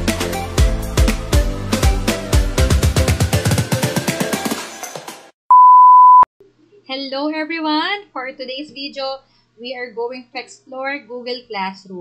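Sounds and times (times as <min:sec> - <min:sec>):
intro music with steady beat: 0:00.0 - 0:04.8
loud electronic beep: 0:05.5 - 0:06.3.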